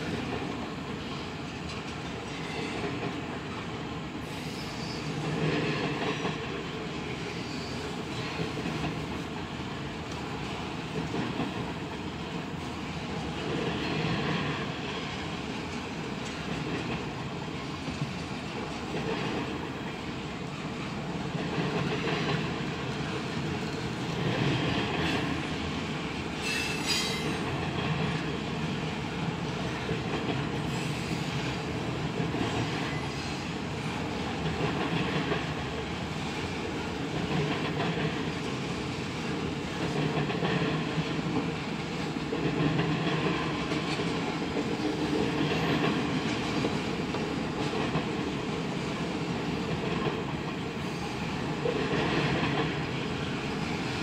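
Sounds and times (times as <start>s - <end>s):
freight train wheels clattering: 4.3s - 54.0s.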